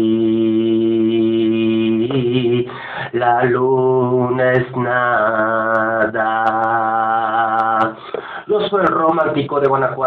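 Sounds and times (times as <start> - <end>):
man singing a ballad: 0.0 - 10.0.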